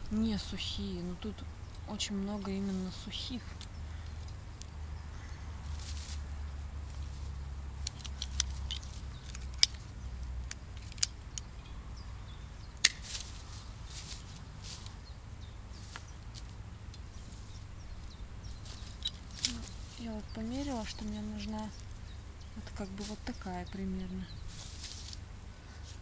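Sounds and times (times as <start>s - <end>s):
pruning shears snipping twigs: 7.8s - 11.5s, 12.8s - 15.0s, 18.6s - 22.0s, 22.8s - 25.2s.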